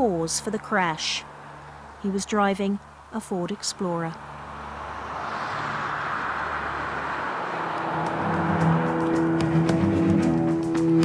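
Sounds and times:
car road rush: 0.0 - 11.0
ticking beat: 8.0 - 11.0
music: 8.2 - 11.0.

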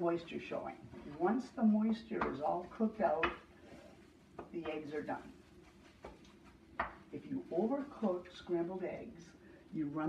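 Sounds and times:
wooden spatula knocking skillet: 5.9 - 7.1.

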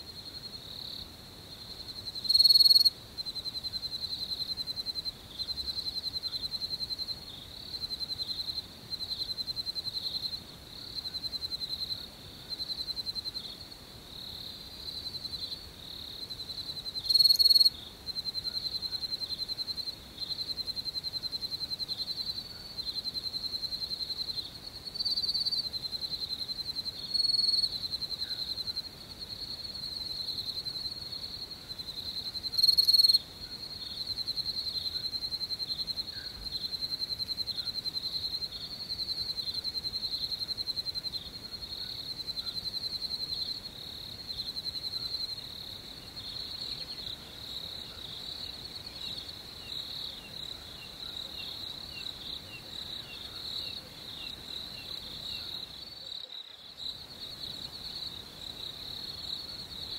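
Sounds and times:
crickets chirping: 0.0 - 59.9.

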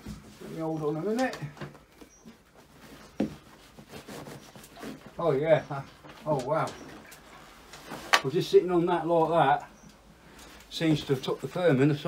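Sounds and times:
clothing rubbing on seat: 2.0 - 8.6.

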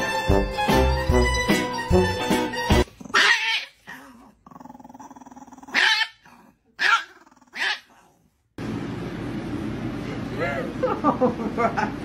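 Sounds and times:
small dog growling: 2.9 - 8.3
small dog barking: 3.1 - 4.0, 5.7 - 6.2, 6.8 - 8.0.

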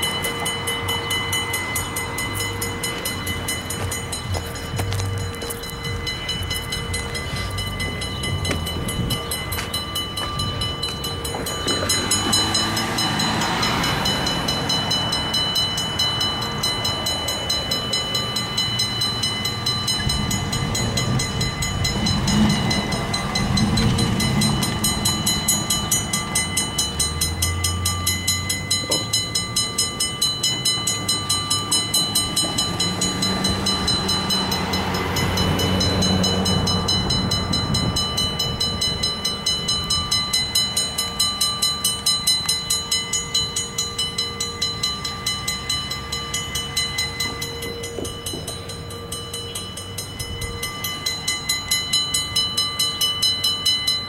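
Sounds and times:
vehicle passing rumble: 0.0 - 42.6
crossing signal bell ringing: 0.0 - 54.0.

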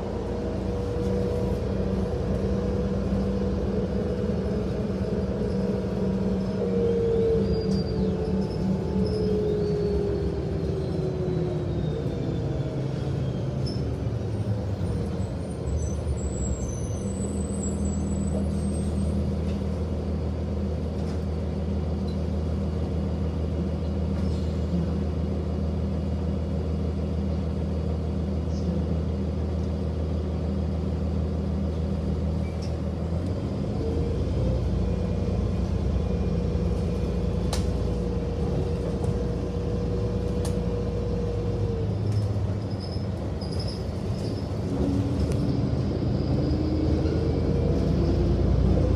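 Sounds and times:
bus drivetrain whine: 0.0 - 48.9
bus engine idling: 0.0 - 48.9.

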